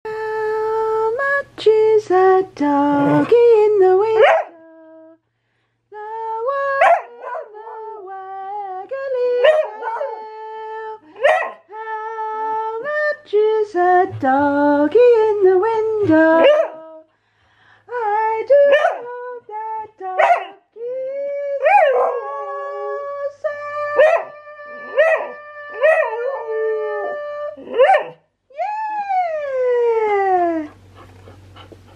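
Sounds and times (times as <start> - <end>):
dog howling: 9.4 - 10.4, 21.6 - 23.1, 24.0 - 28.2.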